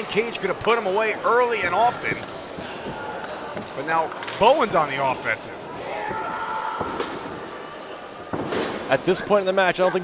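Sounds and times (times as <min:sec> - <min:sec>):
crowd noise in a hall: 0:00.0 - 0:10.0.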